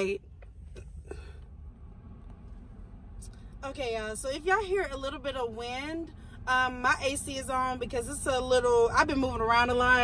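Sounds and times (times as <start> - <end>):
car air conditioning hum: 0.0 - 10.0.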